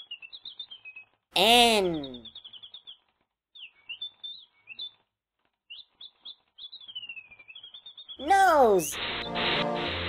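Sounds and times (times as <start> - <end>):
small songbird chirping: 0.0 - 8.2.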